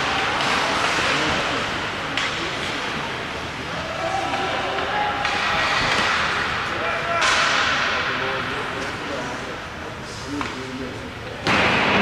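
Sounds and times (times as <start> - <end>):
arena echo: 0.0 - 12.0.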